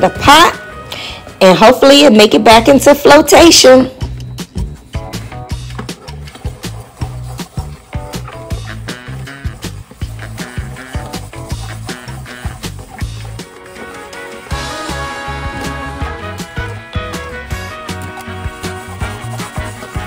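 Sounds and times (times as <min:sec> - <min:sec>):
music with drum beat and bass: 0:04.0 - 0:20.0.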